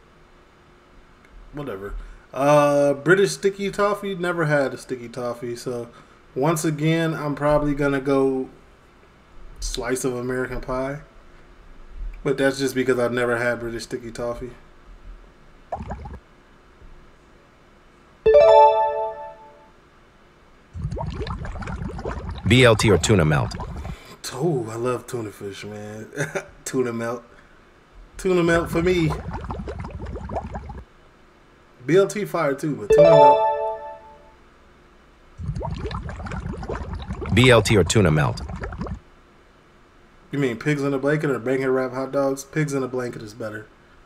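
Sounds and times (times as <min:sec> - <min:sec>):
water bubbling and gurgling: 0:15.7 - 0:16.2, 0:20.8 - 0:24.1, 0:28.6 - 0:30.8, 0:35.4 - 0:39.0
bright chime chord: 0:18.3 - 0:19.6, 0:32.9 - 0:34.4.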